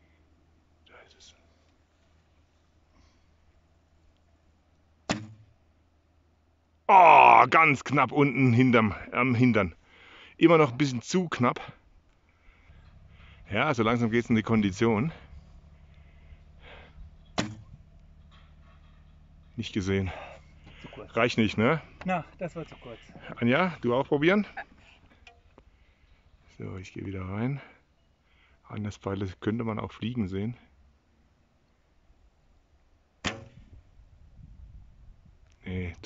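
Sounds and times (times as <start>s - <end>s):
low twang: 5.0s - 5.6s, 12.5s - 20.8s, 33.2s - 34.0s
bow string snap: 33.2s - 33.7s.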